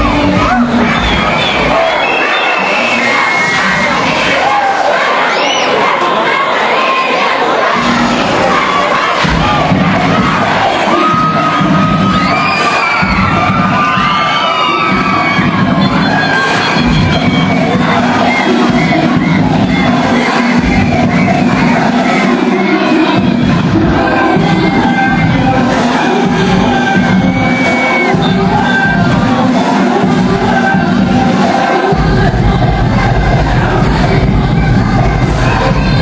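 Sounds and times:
dance music with low beat: 0:00.0 - 0:01.9, 0:07.8 - 0:36.0
crowd cheering and yelling: 0:00.0 - 0:36.0.

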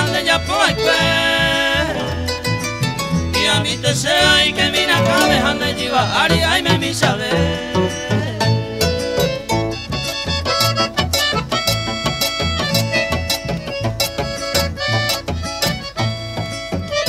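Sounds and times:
accordion melody: 0:00.0 - 0:17.0
steady pulsed bass: 0:00.0 - 0:17.0
strummed guitars: 0:00.0 - 0:17.0.

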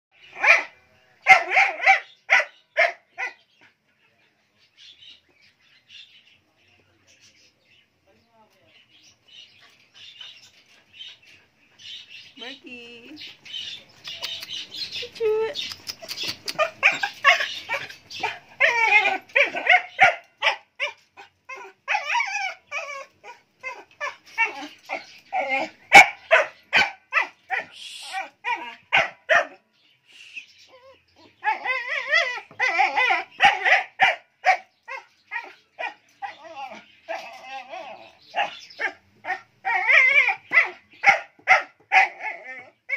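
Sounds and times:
dog barking: 0:00.4 - 0:03.4, 0:16.6 - 0:18.8, 0:19.4 - 0:21.0, 0:25.9 - 0:27.8, 0:28.6 - 0:29.6, 0:33.0 - 0:36.0, 0:40.1 - 0:42.3.

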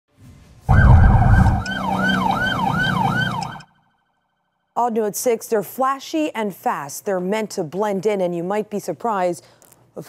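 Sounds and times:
deep rumble: 0:00.7 - 0:02.5
electronic police siren yelping: 0:00.7 - 0:03.8.

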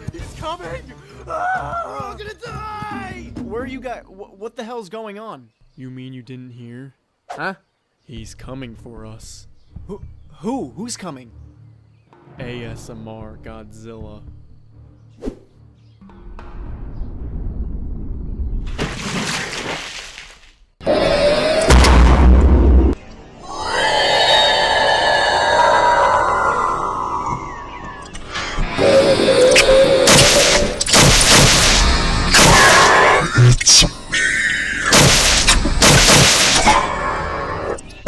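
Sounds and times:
monster roar: 0:20.8 - 0:22.7, 0:23.4 - 0:30.8, 0:31.6 - 0:35.5, 0:36.4 - 0:37.8
dramatic music: 0:28.6 - 0:33.2
loud crashing hits: 0:34.9 - 0:36.7.

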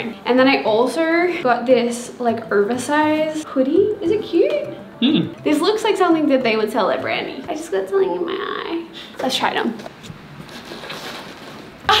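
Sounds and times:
woman's voice: 0:00.0 - 0:04.8, 0:05.4 - 0:09.9.

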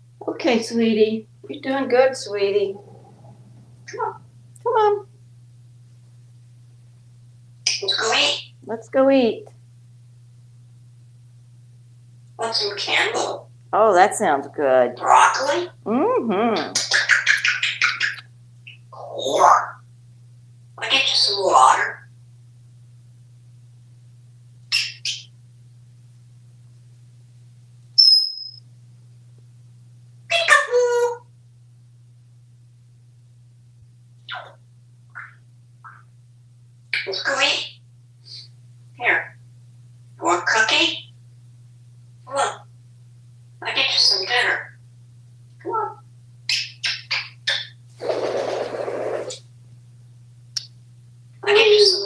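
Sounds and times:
steady low hum: 0:00.0 - 0:52.0
parrot making high vocal sounds: 0:07.7 - 0:08.5, 0:12.4 - 0:13.4, 0:15.0 - 0:15.8, 0:16.8 - 0:18.2, 0:19.0 - 0:19.8, 0:20.8 - 0:22.0, 0:30.3 - 0:31.2, 0:34.3 - 0:34.6, 0:37.0 - 0:37.7, 0:40.2 - 0:41.0, 0:42.3 - 0:42.7, 0:43.6 - 0:44.7, 0:45.6 - 0:47.7, 0:51.4 - 0:52.0
person speaking: 0:15.9 - 0:16.8
parrot wavering call: 0:28.0 - 0:28.6, 0:51.6 - 0:52.0
parrot wingbeats: 0:46.5 - 0:49.4.

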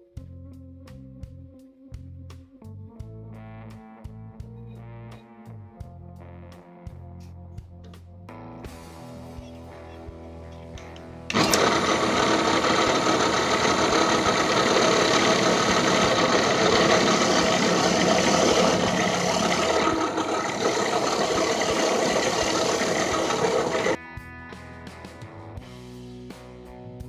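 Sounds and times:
drill press humming: 0:11.3 - 0:24.0.

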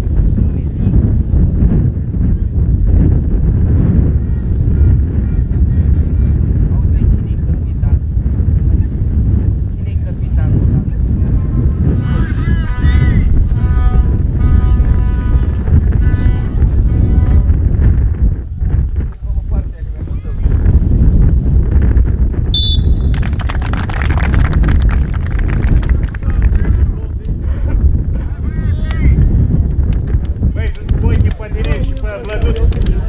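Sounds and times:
wind buffeting microphone: 0:00.0 - 0:33.0
whistle blast: 0:22.5 - 0:23.2
spectators clapping: 0:23.0 - 0:26.8, 0:29.6 - 0:33.0.

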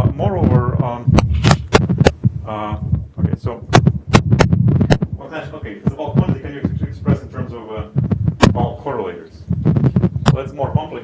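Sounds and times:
man talking: 0:00.0 - 0:01.2, 0:02.4 - 0:03.8, 0:05.2 - 0:09.5, 0:10.3 - 0:11.0
low hum: 0:00.0 - 0:10.4
low thumps: 0:00.0 - 0:10.9.

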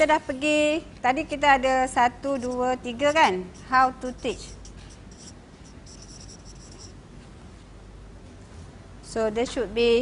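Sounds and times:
low room hum: 0:00.0 - 0:10.0
marker pen squeaking on paper: 0:02.3 - 0:07.0.

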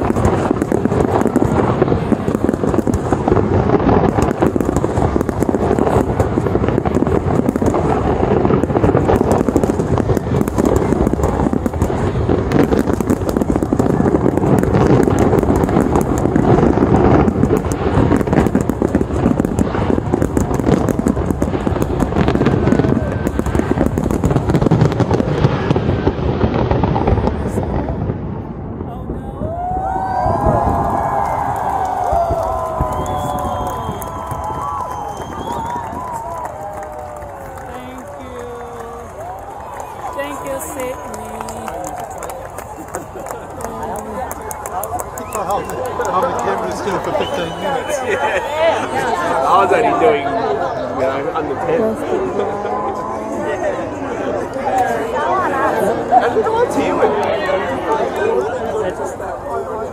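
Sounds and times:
fireworks bursting and crackling: 0:00.0 - 0:59.9
crowd cheering: 0:29.3 - 0:59.9.

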